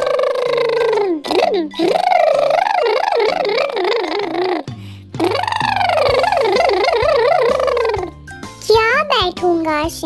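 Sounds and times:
cartoon warbling tone: 0:00.0 - 0:08.2
background music bass line: 0:01.1 - 0:10.0.

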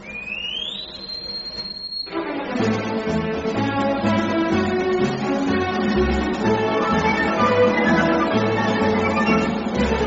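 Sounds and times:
high pure tone gliding upward: 0:06.6 - 0:09.7.

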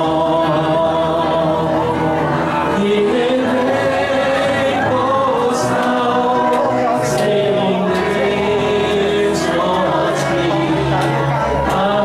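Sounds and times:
man singing worship song: 0:00.0 - 0:12.0
voices singing along: 0:00.0 - 0:12.0.

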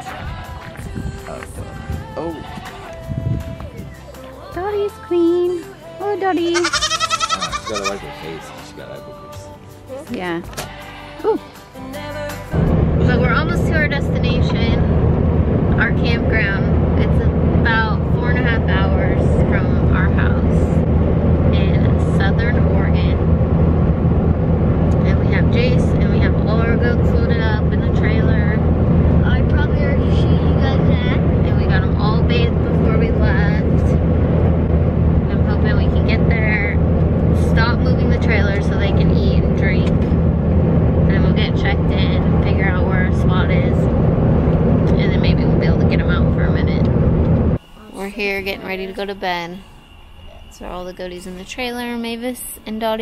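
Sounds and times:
truck engine and tyres droning: 0:12.4 - 0:53.0.

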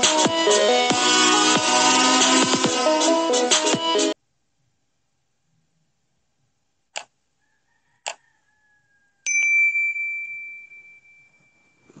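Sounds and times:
mouse clicks: 0:06.9 - 0:07.2, 0:08.0 - 0:08.2
bell ding: 0:09.3 - 0:12.0.

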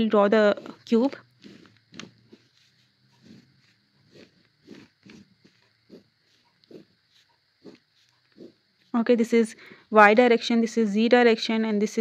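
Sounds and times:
ballpoint pen scratching paper: 0:00.3 - 0:09.8.

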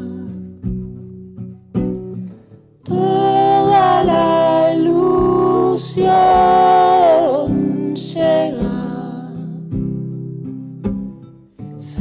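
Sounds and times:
woman singing: 0:00.0 - 0:00.5, 0:02.9 - 0:09.8, 0:11.8 - 0:12.0
acoustic guitar picking: 0:00.0 - 0:12.0.

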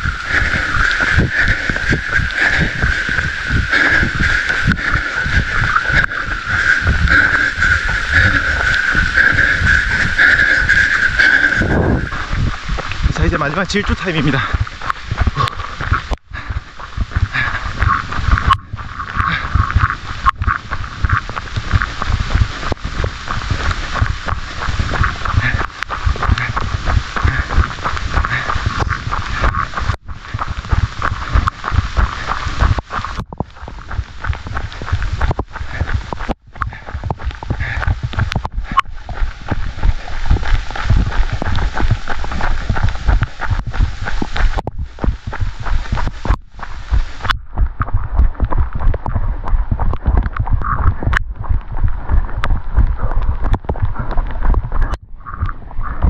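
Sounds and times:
rain patter crackling: 0:00.0 - 0:56.0
wind rumble on microphone: 0:00.0 - 0:56.0.

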